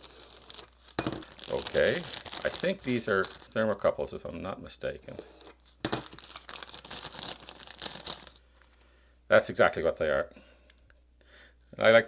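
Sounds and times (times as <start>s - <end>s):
plastic packet crinkling and tearing: 0.0s - 3.8s, 5.5s - 8.8s.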